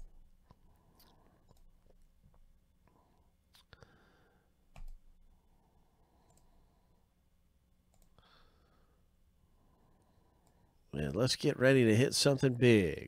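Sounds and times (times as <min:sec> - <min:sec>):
faint computer mouse clicks: 0:06.2 - 0:06.5, 0:07.9 - 0:08.2.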